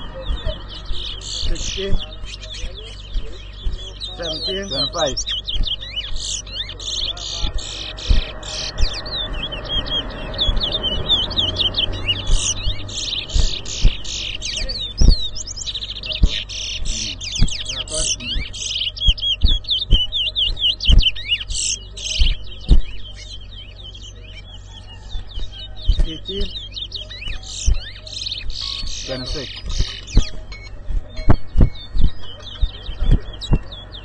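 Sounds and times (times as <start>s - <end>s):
sharp low thumps: 0.0s - 23.7s, 24.8s - 34.0s
finches chirping and trilling: 0.0s - 34.0s.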